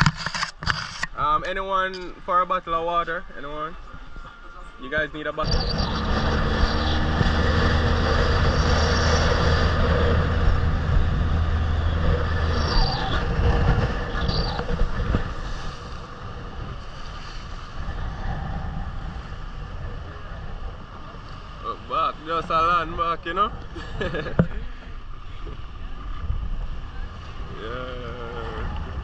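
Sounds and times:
rumble of water: 0:00.0 - 0:29.0
wind: 0:00.0 - 0:29.0
outboard motor running: 0:05.4 - 0:21.8.

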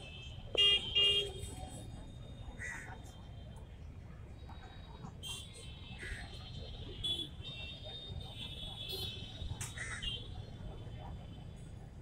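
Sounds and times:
vehicle horn beeps: 0:00.0 - 0:01.5
outdoor background noise: 0:00.0 - 0:12.0.

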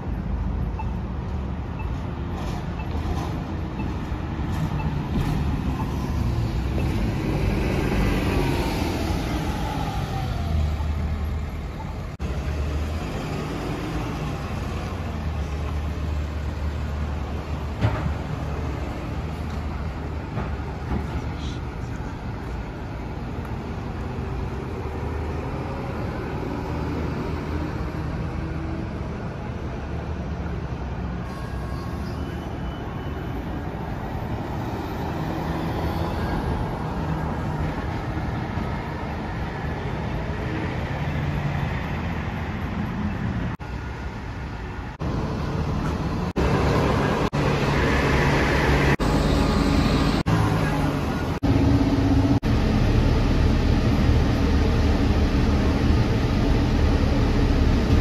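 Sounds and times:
bus accelerating: 0:00.0 - 0:58.0
bus engine rumble: 0:00.0 - 0:58.0.

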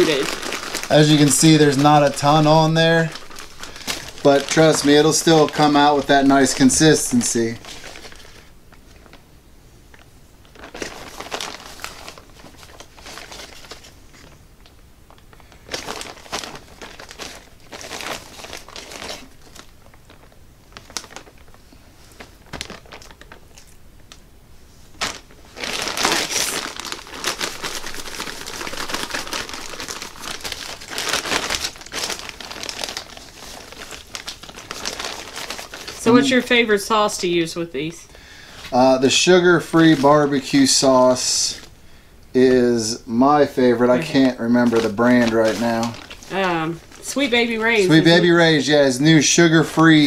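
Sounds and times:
plastic bag crinkling: 0:00.0 - 0:09.2, 0:09.9 - 0:41.7, 0:42.4 - 0:50.0.

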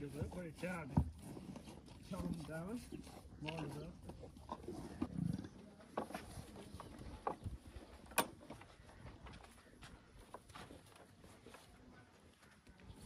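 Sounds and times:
cattle chewing fodder: 0:00.0 - 0:13.0.

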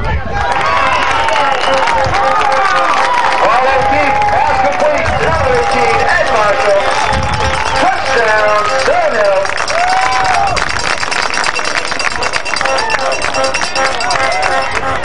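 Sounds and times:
crowd calling and shouting: 0:00.0 - 0:15.0
crowd clapping: 0:00.2 - 0:15.0.

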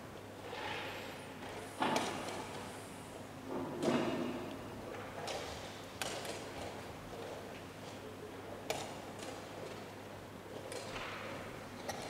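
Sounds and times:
room noise murmur: 0:00.0 - 0:12.0.

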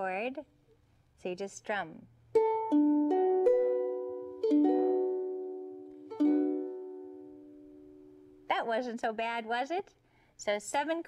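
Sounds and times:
ukulele chord strummed: 0:02.3 - 0:08.4
ukulele notes picked: 0:02.3 - 0:08.4.

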